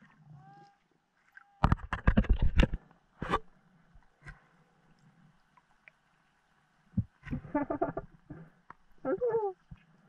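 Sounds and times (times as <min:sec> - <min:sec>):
muffled voice underwater: 0:09.0 - 0:09.6.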